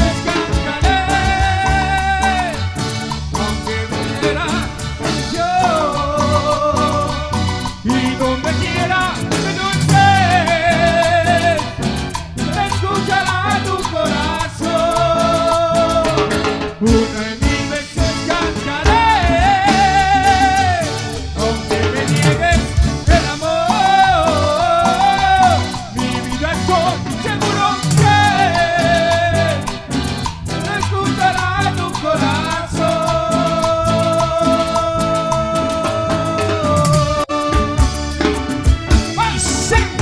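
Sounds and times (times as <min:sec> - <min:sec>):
fast percussion beat: 0:00.0 - 0:40.0
held melodic lead line: 0:00.0 - 0:40.0
latin band playing live: 0:00.0 - 0:40.0.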